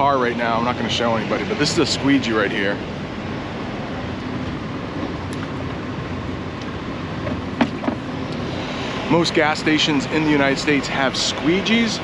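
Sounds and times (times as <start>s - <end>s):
diesel truck engines idling: 0.0s - 12.0s.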